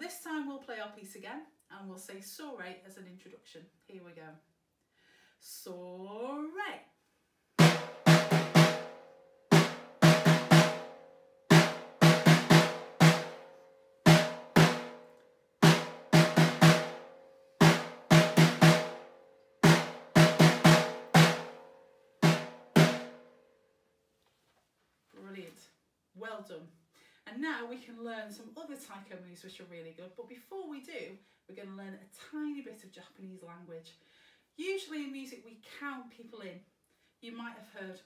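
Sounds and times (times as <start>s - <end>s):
snare drum struck with drumsticks: 14.1s - 15.0s, 15.6s - 17.0s, 17.6s - 19.0s, 19.6s - 21.6s.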